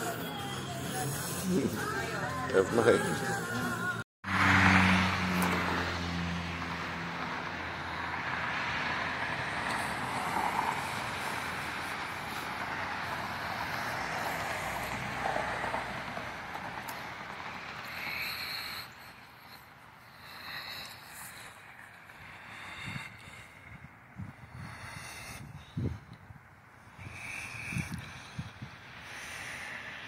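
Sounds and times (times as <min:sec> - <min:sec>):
rush of road traffic: 0:00.0 - 0:30.0
vehicle engine hum: 0:00.0 - 0:30.0.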